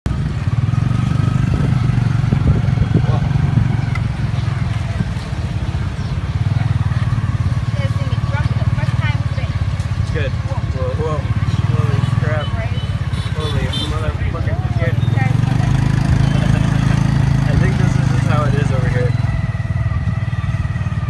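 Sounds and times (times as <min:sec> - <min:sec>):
motorcycle engine running: 0:00.1 - 0:21.0
voices: 0:01.4 - 0:21.0.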